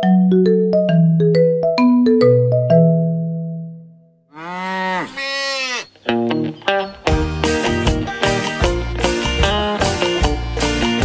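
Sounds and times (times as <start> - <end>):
cow mooing: 4.3 - 5.9.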